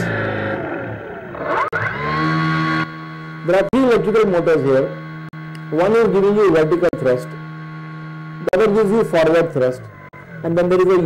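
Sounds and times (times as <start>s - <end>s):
motor whine and hum: 0.0s - 11.0s
click: 5.5s - 5.7s.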